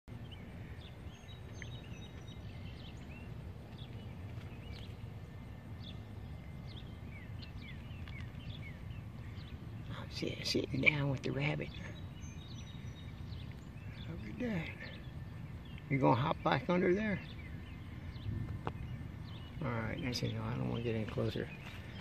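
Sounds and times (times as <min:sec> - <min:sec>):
low background rumble: 0:00.0 - 0:22.0.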